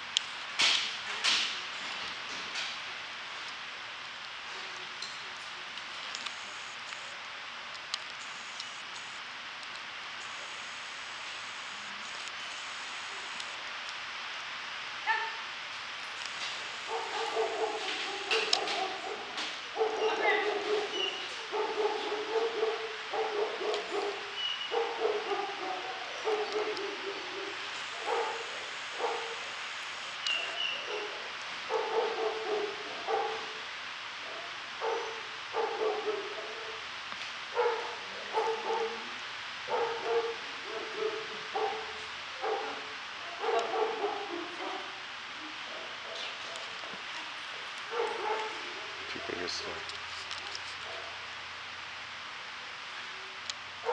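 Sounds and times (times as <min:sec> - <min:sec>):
room hiss: 0:00.0 - 0:53.9.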